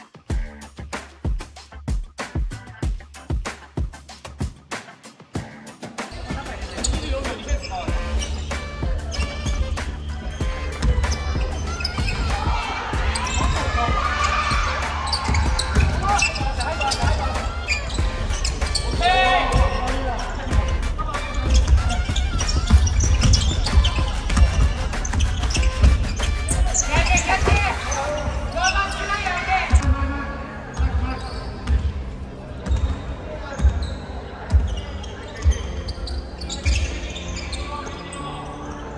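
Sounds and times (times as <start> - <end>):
players calling out: 5.5 - 31.6
basketball bouncing on wooden floor: 10.7 - 12.4, 21.5 - 27.6.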